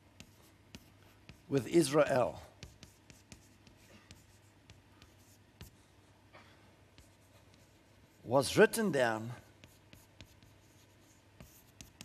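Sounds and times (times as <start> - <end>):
chalk tapping and scratching: 0.0 - 5.9, 6.9 - 8.3, 9.4 - 12.0.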